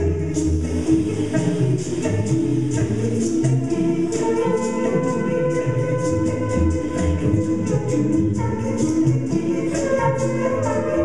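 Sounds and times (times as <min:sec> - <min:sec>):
layered a cappella vocals: 0:00.0 - 0:11.0.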